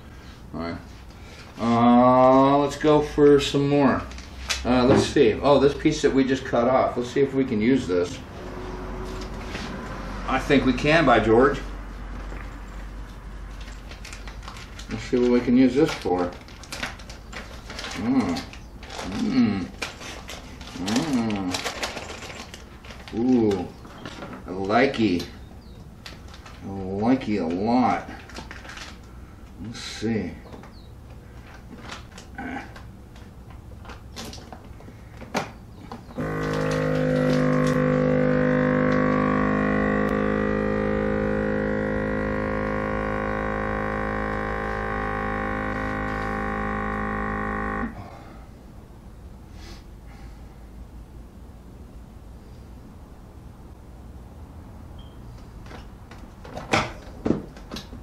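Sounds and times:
person humming: 1.6s - 2.5s, 18.0s - 19.8s, 20.7s - 21.6s
vacuum sealer pump humming: 8.0s - 29.7s, 30.3s - 48.6s
plastic bag crinkling: 12.2s - 25.0s, 26.0s - 29.2s, 31.2s - 34.8s.

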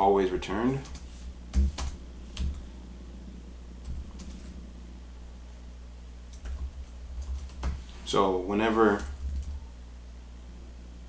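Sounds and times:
computer keyboard typing: 0.7s - 2.6s, 3.8s - 4.6s, 6.3s - 7.8s, 8.8s - 9.6s.

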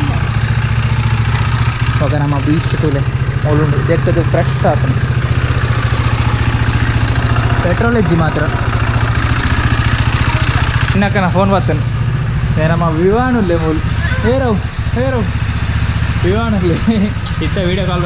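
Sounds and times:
motorcycle engine idling: 0.0s - 18.0s.

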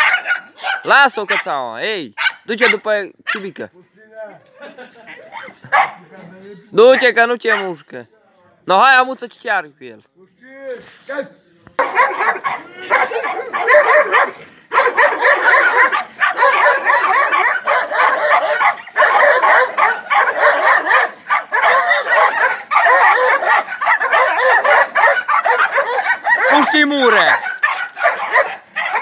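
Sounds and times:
dogs yipping and barking: 0.0s - 1.6s, 2.2s - 3.4s, 4.6s - 6.0s, 6.9s - 7.8s, 11.8s - 29.0s.

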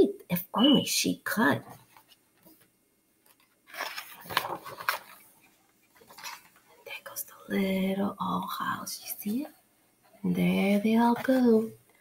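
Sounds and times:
book page turning: 1.8s - 6.8s.

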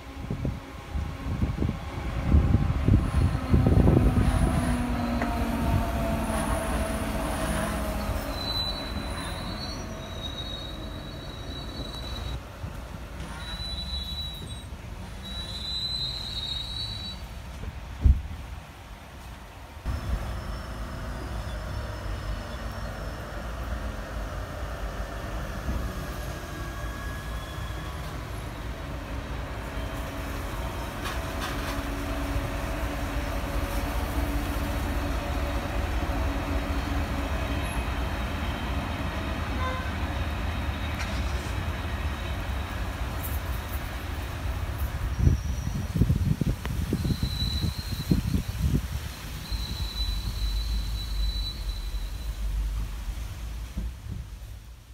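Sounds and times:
high wheel squeal: 6.4s - 12.4s, 13.2s - 17.3s, 19.9s - 23.4s, 26.0s - 28.5s, 45.0s - 46.1s, 46.8s - 52.7s
locomotive engine low rumble: 19.3s - 54.9s.

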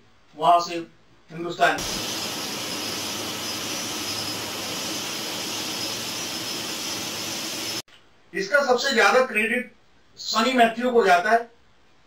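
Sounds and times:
faint high engine whine: 1.8s - 7.8s
jet engines rushing: 1.8s - 7.8s.

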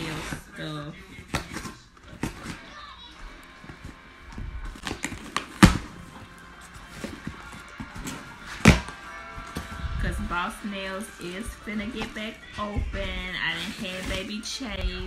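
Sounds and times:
cardboard and tape rustling: 0.0s - 15.0s.

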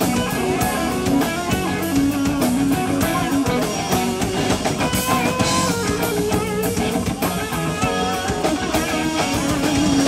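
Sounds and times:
bass guitar: 0.0s - 10.0s
drum kit: 0.0s - 10.0s
electric guitar lead: 0.0s - 10.0s.

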